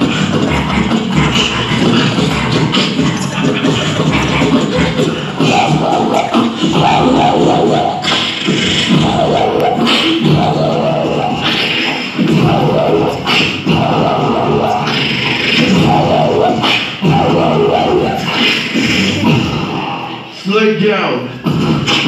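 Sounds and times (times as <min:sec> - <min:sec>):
group beatboxing through a pa: 0:00.0 - 0:20.4, 0:21.2 - 0:22.0.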